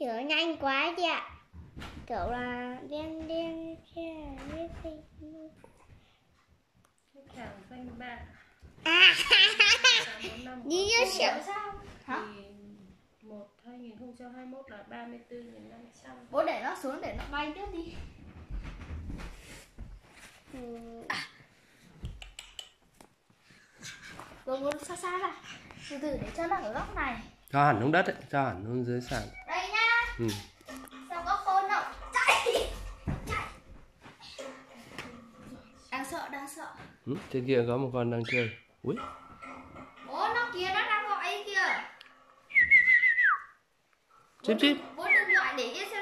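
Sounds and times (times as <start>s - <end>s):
parrot whistling: 42.5s - 43.6s, 45.0s - 45.5s.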